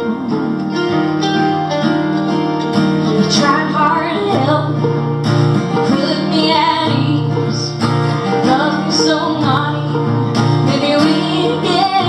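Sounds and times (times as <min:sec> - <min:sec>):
acoustic guitar: 0:00.0 - 0:12.0
plucked string instrument: 0:00.0 - 0:12.0.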